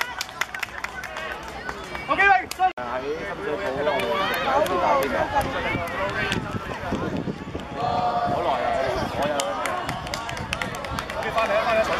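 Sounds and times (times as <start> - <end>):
children and adults talking: 0.0 - 11.9.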